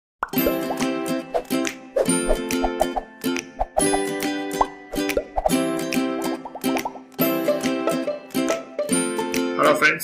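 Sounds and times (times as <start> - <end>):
bubbly popping sound effects: 0.2 - 0.8, 2.3 - 7.1.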